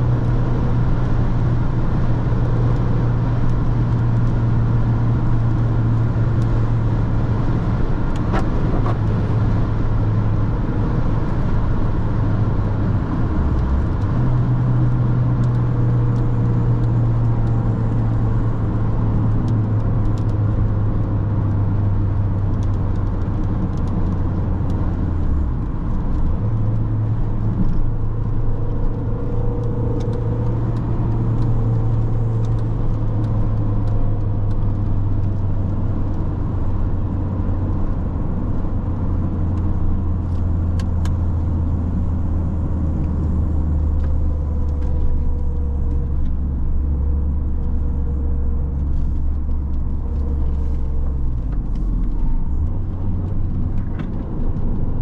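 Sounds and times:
car engine droning: 0.0s - 55.0s
tyre and road noise: 0.0s - 55.0s.

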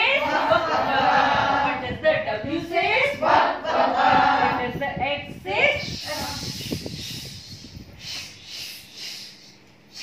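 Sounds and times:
group hissing sss sound: 5.9s - 10.0s.

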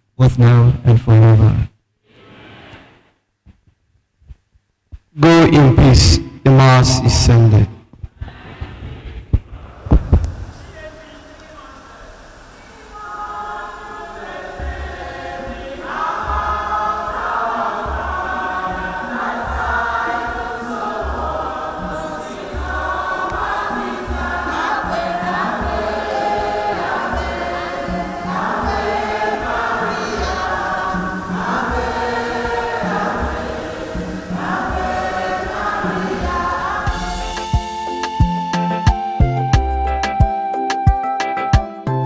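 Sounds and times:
choir singing a hymn: 9.6s - 38.2s
low steady beat: 13.9s - 41.7s.

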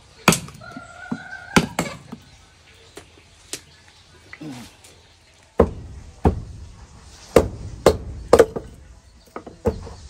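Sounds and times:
hard striking blows with thuds: 5.6s - 6.7s, 7.3s - 8.8s.

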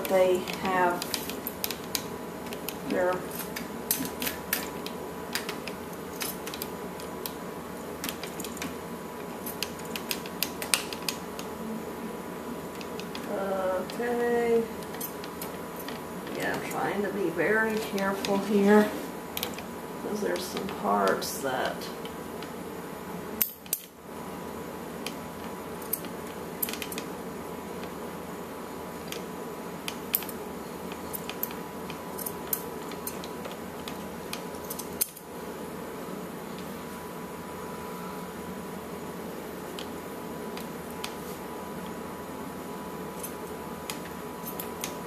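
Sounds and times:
background hum: 0.0s - 45.0s.

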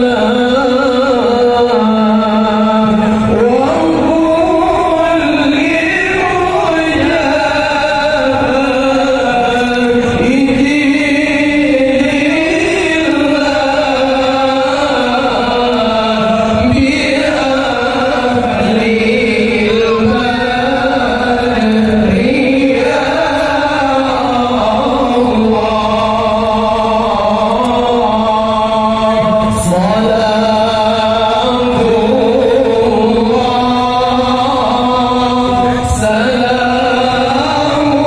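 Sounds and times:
men chanting in unison: 0.0s - 38.0s.

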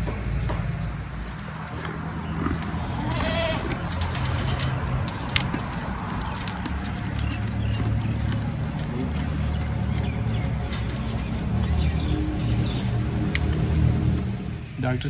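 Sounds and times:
low motor hum: 0.0s - 14.8s
goat bleating: 2.8s - 4.1s.

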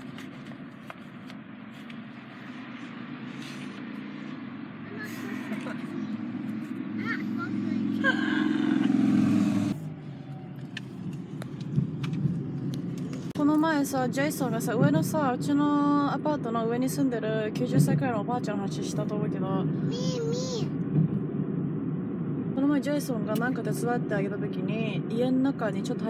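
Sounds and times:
car engine rumble: 0.0s - 26.0s
road noise inside cabin: 0.0s - 26.0s
man and woman laughing: 8.0s - 9.0s.

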